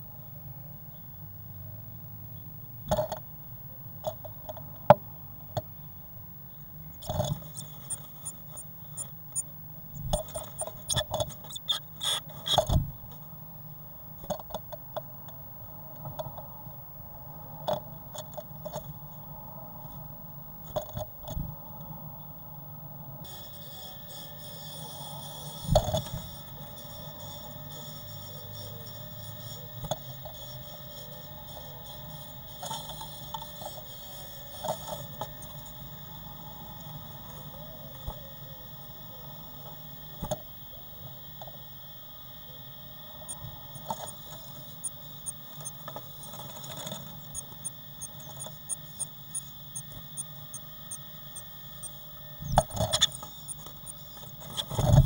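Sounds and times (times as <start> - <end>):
steady hum: 0.0 - 55.0
bird scratching in a nest box: 6.9 - 13.2, 23.3 - 35.8, 43.2 - 51.0, 52.5 - 55.0.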